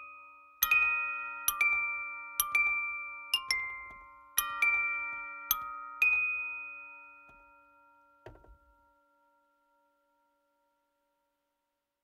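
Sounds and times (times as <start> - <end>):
bell-like chime note ringing: 0.0 - 10.7
soft knock: 8.2 - 8.7.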